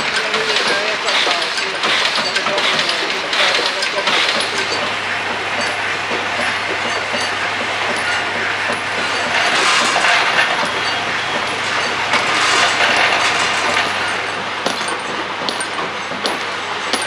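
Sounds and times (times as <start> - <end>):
low machine hum: 0.0 - 17.0
machinery clattering: 0.0 - 17.0.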